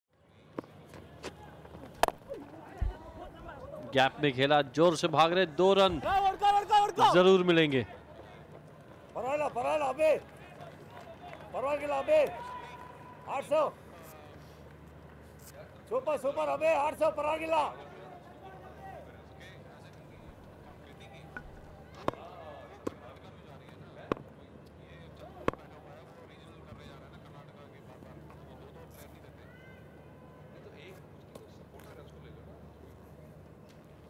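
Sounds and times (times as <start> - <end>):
stadium crowd noise: 0.1 - 34.0
distant voices: 0.4 - 34.0
man shouting: 6.0 - 7.3.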